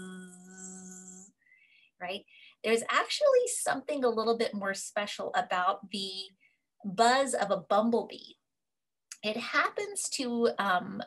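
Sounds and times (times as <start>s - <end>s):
woman imitating bee buzz: 0.0s - 1.3s.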